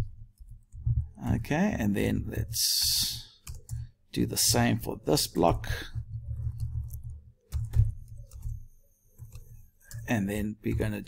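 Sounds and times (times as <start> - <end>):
low background hum: 0.0 - 11.0
keyboard keystroke clicks: 6.4 - 10.0.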